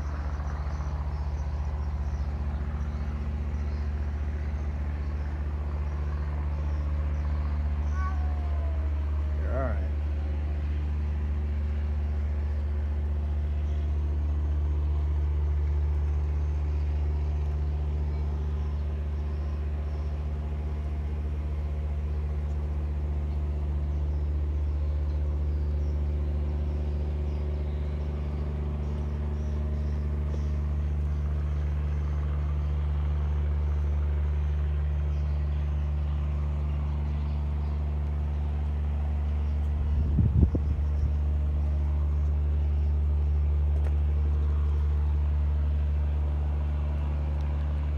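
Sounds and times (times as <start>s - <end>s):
low mechanical hum: 0.0s - 47.9s.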